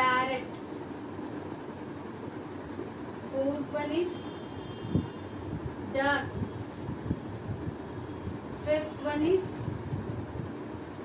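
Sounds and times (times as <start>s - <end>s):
low steady background rumble: 0.0s - 11.0s.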